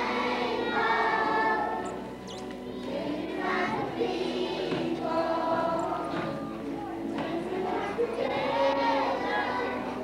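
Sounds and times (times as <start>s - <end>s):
young children singing together: 0.0s - 10.0s.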